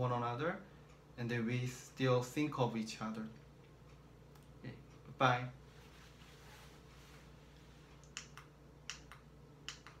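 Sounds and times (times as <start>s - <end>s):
sharp clicks in pairs: 8.0s - 10.0s.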